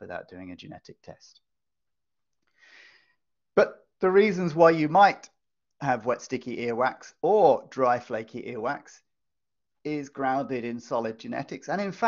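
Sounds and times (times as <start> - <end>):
man speaking: 0.0 - 1.4, 3.6 - 9.0, 9.9 - 12.0
faint intake of breath: 2.5 - 3.2.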